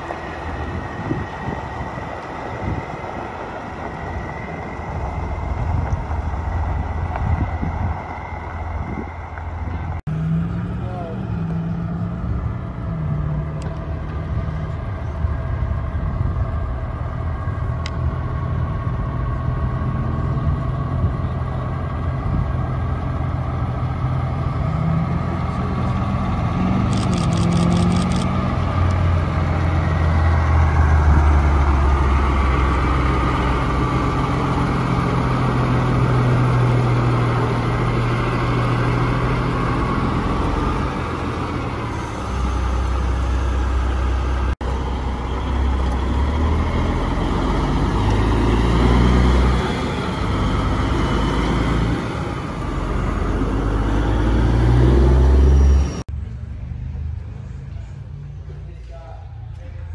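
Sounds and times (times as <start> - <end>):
diesel truck engines passing: 0.0 - 59.9.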